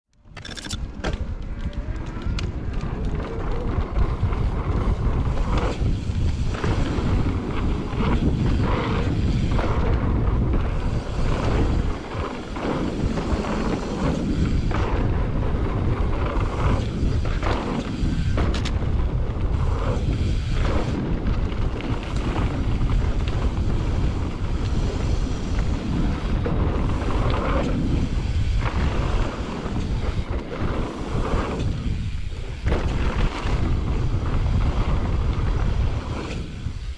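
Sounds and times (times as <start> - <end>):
bike rumbling over dirt trail: 0.3 - 36.9
wind buffeting microphone: 0.6 - 36.9.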